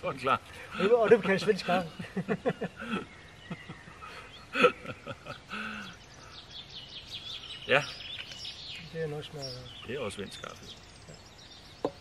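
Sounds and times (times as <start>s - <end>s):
men's voices: 0.0s - 6.0s, 7.4s - 10.8s
small birds chirping: 0.0s - 12.0s.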